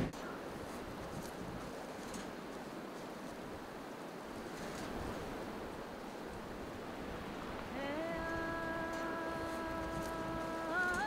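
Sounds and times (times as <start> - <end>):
sea: 0.0 - 11.0
wind: 0.0 - 11.0.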